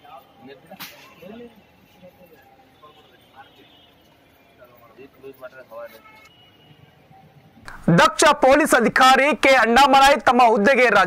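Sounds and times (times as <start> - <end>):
people talking in background: 0.0 - 7.9.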